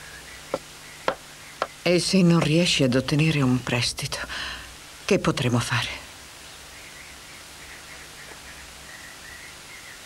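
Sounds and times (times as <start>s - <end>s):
videotape background hiss: 0.0s - 10.0s.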